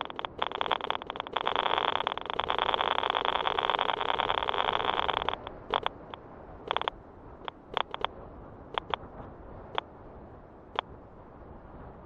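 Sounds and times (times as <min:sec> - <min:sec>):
geiger counter clicking: 0:00.0 - 0:09.0.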